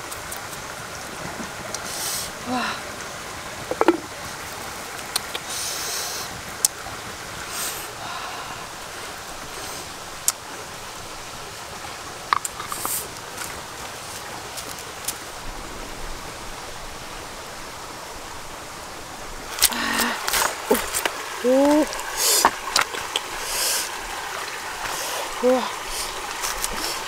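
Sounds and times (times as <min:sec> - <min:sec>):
forest stream rushing: 0:00.0 - 0:27.0
water splashing: 0:03.5 - 0:05.7, 0:06.4 - 0:27.0.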